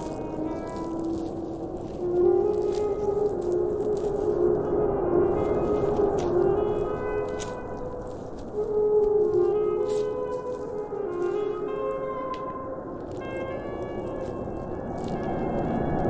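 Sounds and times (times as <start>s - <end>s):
alto saxophone long notes: 0.0s - 16.0s.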